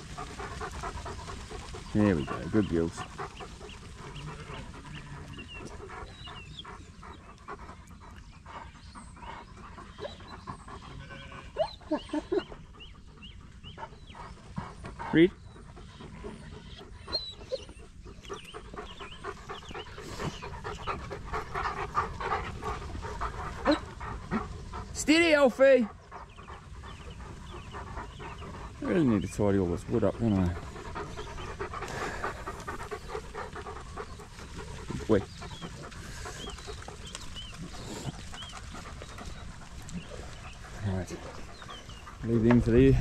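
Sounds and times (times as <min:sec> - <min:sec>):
dog panting: 0:00.0 - 0:43.0
sheep bleating: 0:10.9 - 0:11.6.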